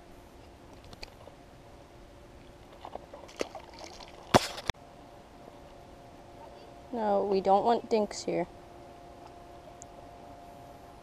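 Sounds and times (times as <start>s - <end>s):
fish splashing into water: 2.6s - 4.7s.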